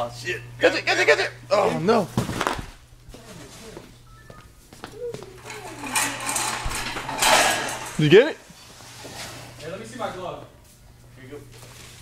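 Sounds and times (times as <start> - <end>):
steady low hum: 0.0 - 12.0
rustling and scuffling: 2.0 - 9.6.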